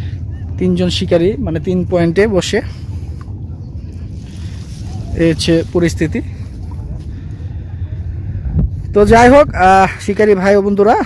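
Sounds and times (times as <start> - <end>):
low outdoor rumble: 0.0 - 11.0
person speaking: 4.9 - 6.4.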